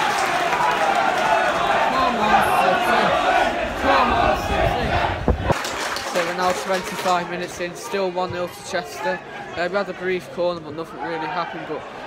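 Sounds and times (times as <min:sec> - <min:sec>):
crowd shouting and chanting: 0:00.0 - 0:12.0.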